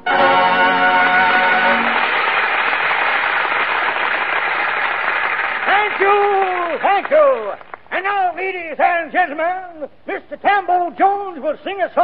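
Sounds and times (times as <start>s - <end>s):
audience applause: 1.0s - 7.9s.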